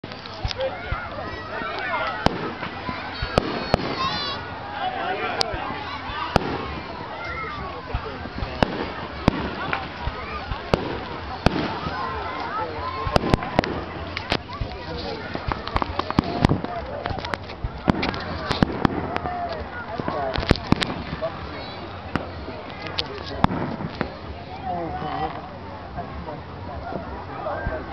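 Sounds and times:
fireworks bursting: 0:00.0 - 0:24.6.

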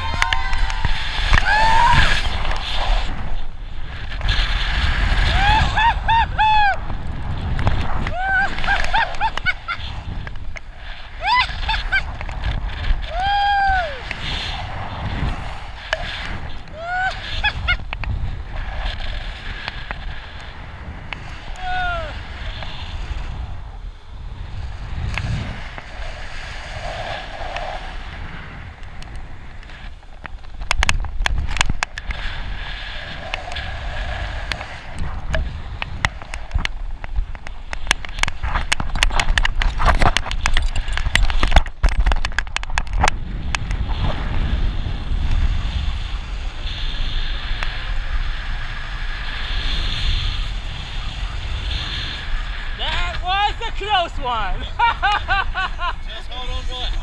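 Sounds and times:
wind buffeting microphone: 0:00.0 - 0:57.0
rapid crackles and knocks: 0:06.8 - 0:13.1, 0:14.0 - 0:21.6, 0:24.5 - 0:45.6.

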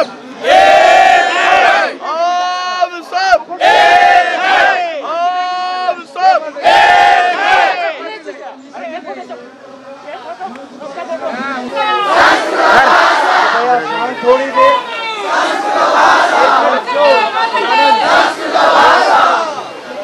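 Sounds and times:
crowd of men chanting: 0:00.4 - 0:02.0, 0:03.6 - 0:05.0, 0:06.6 - 0:08.0, 0:11.9 - 0:13.8, 0:15.2 - 0:19.6.

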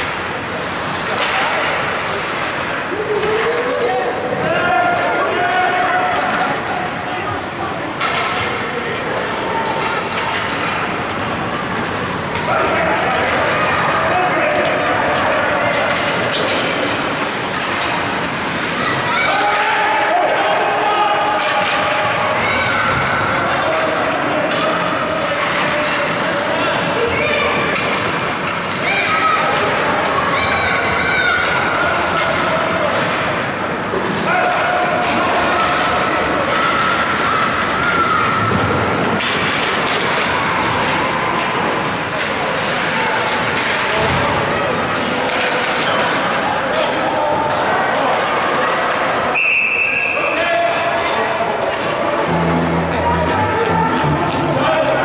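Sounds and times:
puck and sticks hitting boards: 0:00.0 - 0:03.5, 0:08.0 - 0:09.1, 0:09.7 - 0:26.3, 0:27.1 - 0:47.1, 0:50.1 - 0:55.0
people shouting: 0:18.8 - 0:24.1, 0:52.1 - 0:55.0
referee's whistle: 0:49.4 - 0:50.2.

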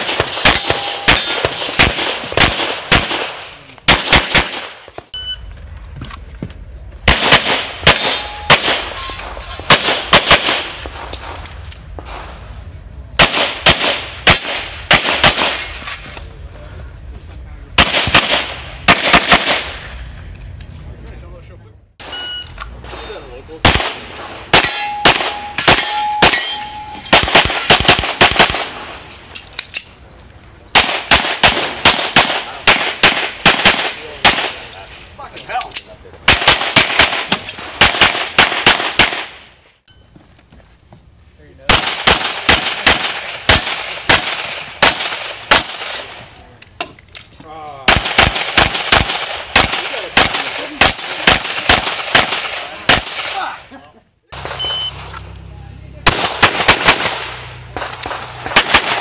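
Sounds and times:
steel targets ringing: 0:00.4 - 0:01.5, 0:07.9 - 0:09.4, 0:24.6 - 0:27.2, 0:44.1 - 0:46.3, 0:50.8 - 0:51.7, 0:52.9 - 0:53.4
pistol shots in rapid strings: 0:27.1 - 0:28.8, 0:47.9 - 0:53.1, 0:56.0 - 0:59.0.

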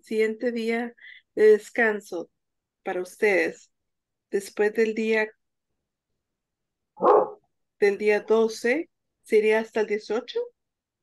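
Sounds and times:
dog bark: 0:07.0 - 0:07.4.

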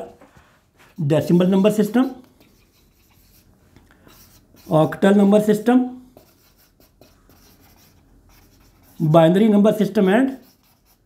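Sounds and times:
marker writing on whiteboard: 0:01.2 - 0:11.0.

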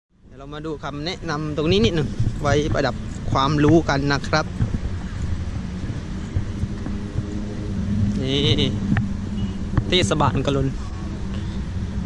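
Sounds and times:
low background rumble: 0:00.2 - 0:12.0.

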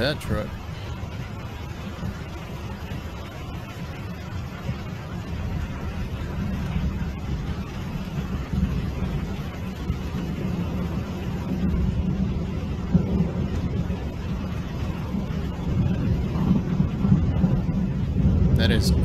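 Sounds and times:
river rushing roar: 0:00.0 - 0:16.3, 0:18.5 - 0:19.0
wind buffeting microphone: 0:00.0 - 0:19.0.

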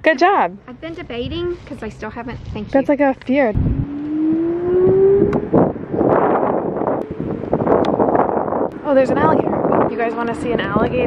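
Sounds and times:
wind rushing over microphone: 0:00.4 - 0:11.0
electric scooter motor whine: 0:03.7 - 0:08.6.

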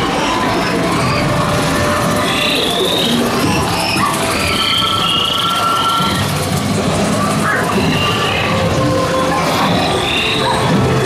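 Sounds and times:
ambient music: 0:00.0 - 0:11.0
gliding whistle-like creature calls: 0:00.0 - 0:11.0.

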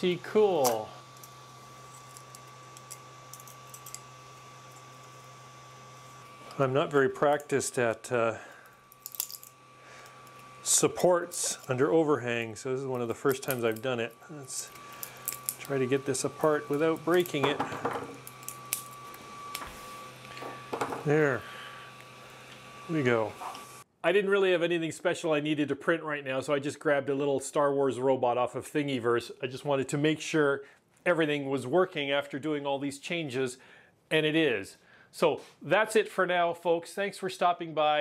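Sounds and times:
high whine: 0:00.0 - 0:23.8
steady hum: 0:00.0 - 0:23.9.

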